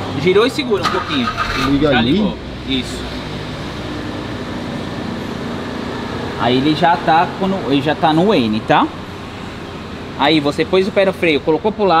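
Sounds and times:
car engine idling: 0:00.7 - 0:04.6.

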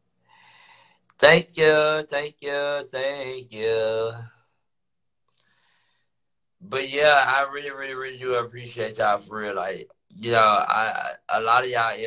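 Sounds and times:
person speaking: 0:01.2 - 0:04.3, 0:06.6 - 0:12.0
faint click: 0:05.2 - 0:05.6.

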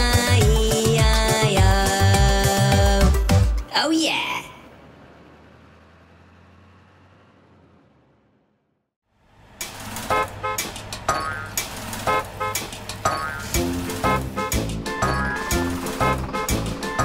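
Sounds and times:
upbeat instrumental music: 0:00.0 - 0:03.7, 0:13.1 - 0:17.0.

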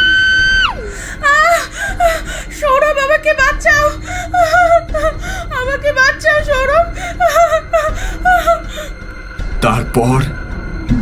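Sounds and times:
woman wailing and whimpering: 0:00.6 - 0:09.0.

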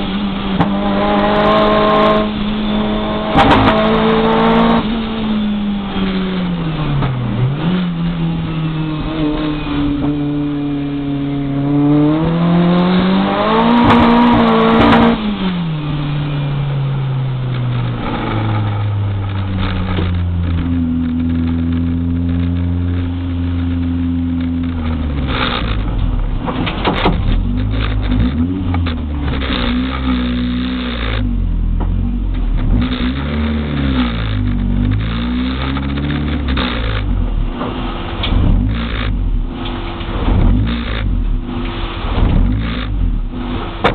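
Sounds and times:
car engine revving: 0:00.0 - 0:43.9
knocks and rattles: 0:17.5 - 0:39.2.

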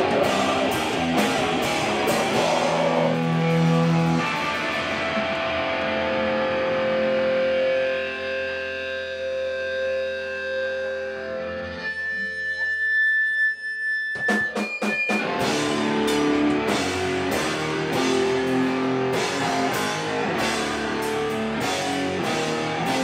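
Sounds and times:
rock band playing: 0:00.0 - 0:12.2, 0:14.2 - 0:23.0
distorted electric guitar feedback: 0:00.0 - 0:23.0.

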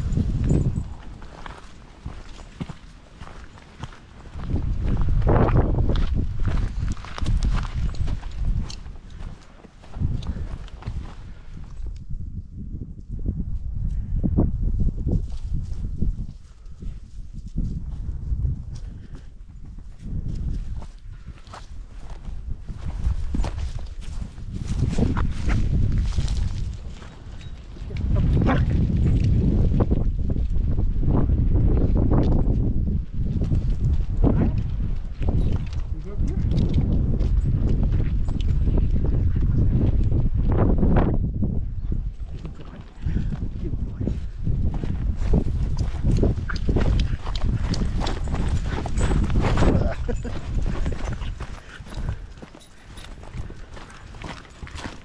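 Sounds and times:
footsteps on dirt path: 0:00.0 - 0:12.2, 0:15.0 - 0:55.0
low rumble on microphone: 0:27.8 - 0:52.3.

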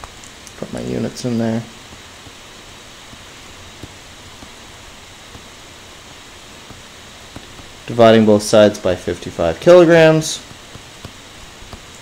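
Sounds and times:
microphone hiss: 0:00.0 - 0:12.0.

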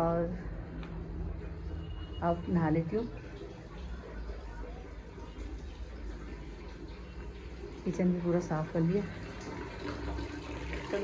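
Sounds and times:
woman speaking: 0:00.0 - 0:00.4, 0:02.2 - 0:03.2, 0:07.8 - 0:09.2
tap running into bucket: 0:05.2 - 0:11.0.

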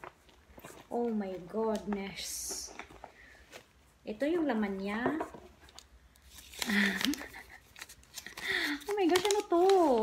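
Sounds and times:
paper rustling and crinkling: 0:05.6 - 0:10.0.

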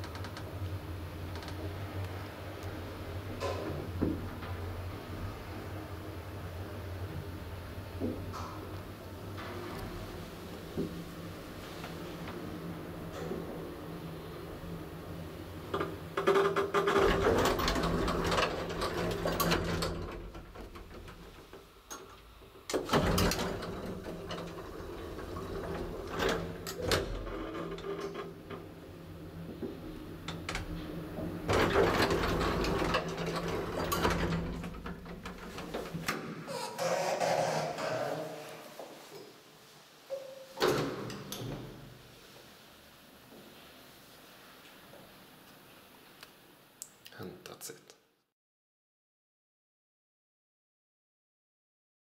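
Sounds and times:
elevator machine hum: 0:00.0 - 0:36.6
elevator car and doors rattling: 0:09.3 - 0:38.4
landing door clacking open: 0:15.8 - 0:28.7, 0:29.6 - 0:37.8.

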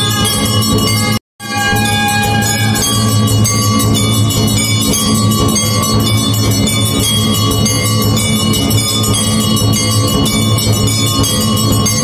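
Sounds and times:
temple bells ringing: 0:00.0 - 0:12.0.

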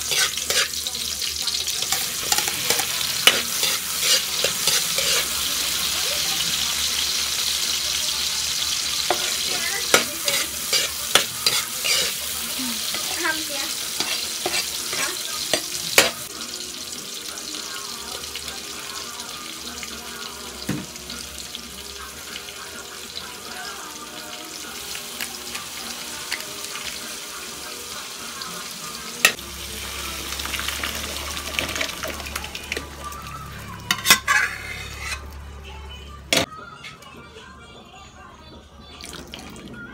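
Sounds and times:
stirring in a pan: 0:00.0 - 0:01.0, 0:01.7 - 0:05.6, 0:09.0 - 0:16.2, 0:33.8 - 0:35.4
food sizzling in a pan: 0:00.0 - 0:35.5.

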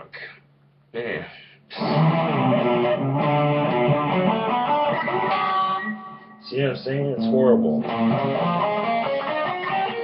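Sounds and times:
guitar strumming chords: 0:01.7 - 0:10.0.

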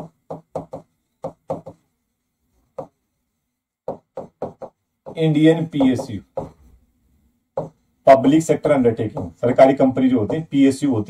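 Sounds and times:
marker knocking on writing board: 0:00.0 - 0:01.8, 0:02.7 - 0:03.0, 0:03.8 - 0:06.7, 0:07.6 - 0:07.8, 0:09.0 - 0:10.6.

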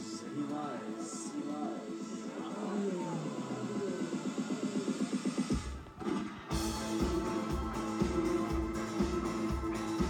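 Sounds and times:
pulsing synth part: 0:01.5 - 0:10.0
heavy bass and drums: 0:06.5 - 0:10.0.

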